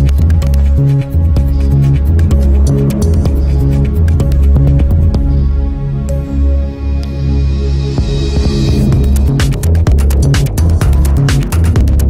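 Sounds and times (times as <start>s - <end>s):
electronic music with pulsing bass: 0.0s - 12.0s
sharp percussion hits: 6.8s - 12.0s.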